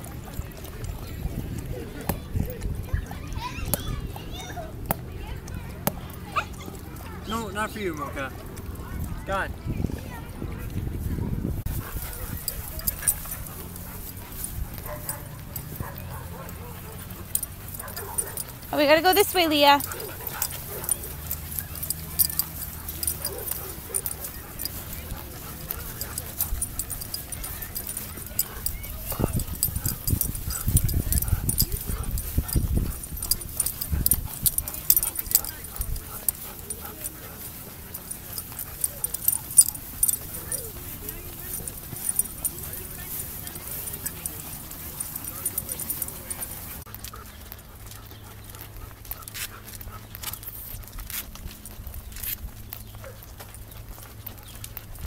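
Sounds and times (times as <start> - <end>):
walking footsteps: 0.0 - 55.0
dogs whimpering: 11.6 - 52.0
dog barking: 12.1 - 18.6, 19.8 - 42.6.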